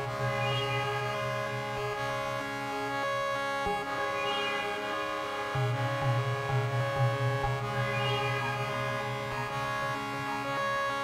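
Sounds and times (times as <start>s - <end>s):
sustained synthesizer chord: 0.0s - 11.0s.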